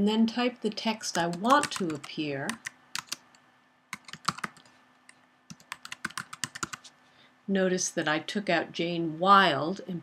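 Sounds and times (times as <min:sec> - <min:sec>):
computer keyboard typing: 0:01.0 - 0:06.9.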